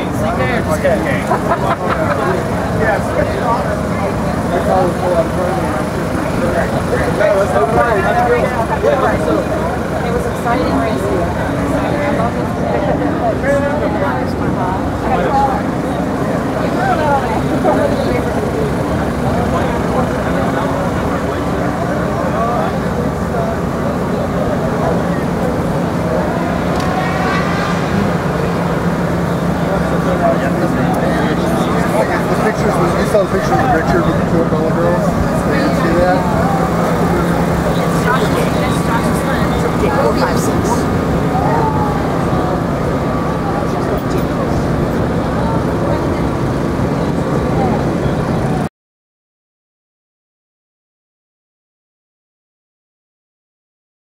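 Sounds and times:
indistinct voices talking: 0:00.0 - 0:48.6
low machine hum: 0:00.0 - 0:48.6.

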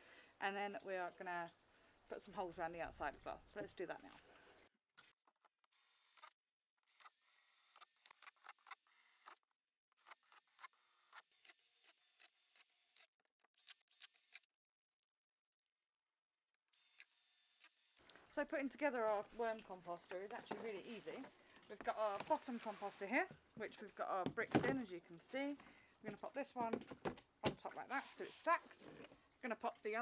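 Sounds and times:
cordless drill whining: 0:05.7 - 0:09.4, 0:10.0 - 0:14.5, 0:16.7 - 0:18.1.

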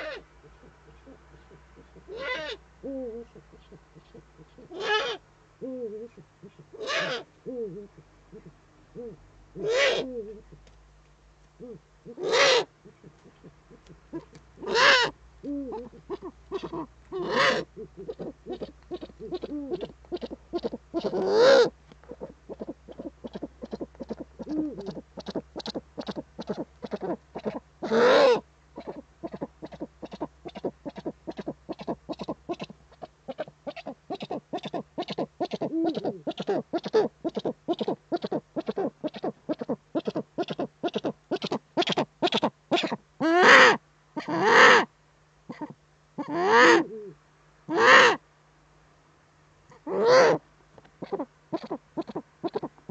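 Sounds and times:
owl calling: 0:00.0 - 0:10.6, 0:11.6 - 0:44.9, 0:45.5 - 0:48.2, 0:49.7 - 0:50.4, 0:51.0 - 0:52.7.

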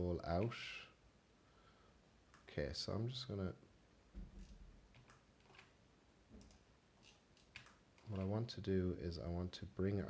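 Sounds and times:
computer mouse clicks: 0:04.4 - 0:05.8, 0:06.4 - 0:08.3.

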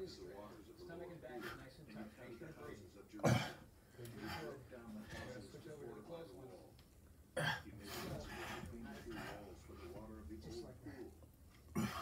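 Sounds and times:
faint background speech: 0:00.0 - 0:12.0
man coughing: 0:03.2 - 0:03.6, 0:07.4 - 0:07.7, 0:11.7 - 0:12.0.

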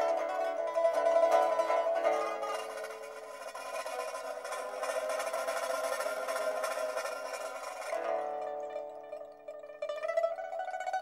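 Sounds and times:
pipa rapid plucking: 0:00.0 - 0:11.0.

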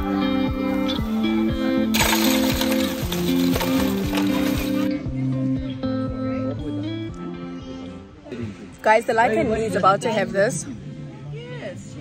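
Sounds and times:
ice cubes rattling into metal tub: 0:01.9 - 0:04.9.

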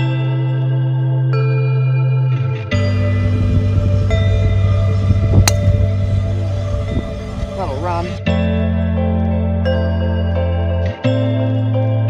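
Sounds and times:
background music with held notes: 0:00.0 - 0:12.0
golf club striking ball: 0:05.4 - 0:05.9.

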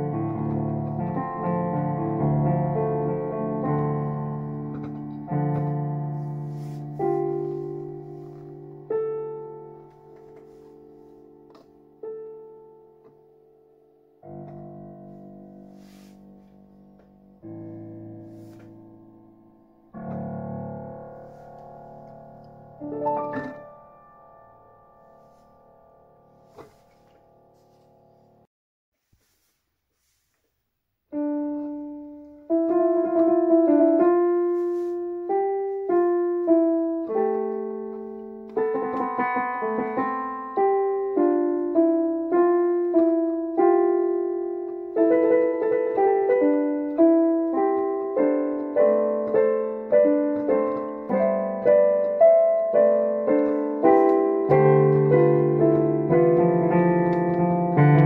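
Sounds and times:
digital piano chord: 0:00.0 - 0:28.5, 0:31.1 - 0:58.0
soft piano notes: 0:00.0 - 0:28.5, 0:31.1 - 0:58.0.

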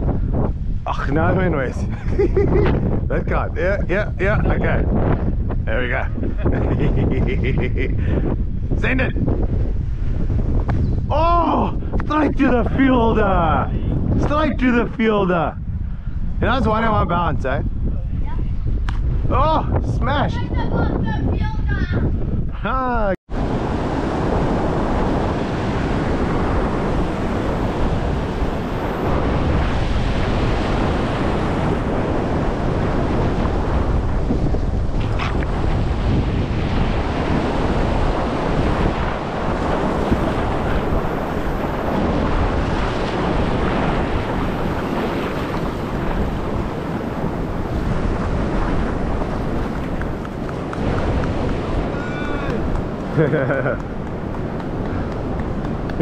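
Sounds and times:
wind buffeting the microphone: 0:00.0 - 0:56.0
surf washing up the beach: 0:23.3 - 0:56.0.

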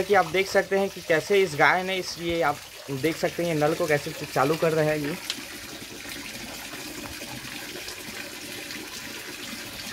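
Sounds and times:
water spraying onto concrete wall: 0:00.0 - 0:09.9.

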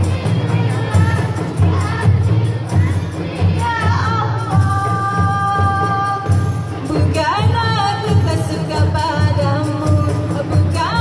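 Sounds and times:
frame drums and bass drums beaten: 0:00.0 - 0:11.0.

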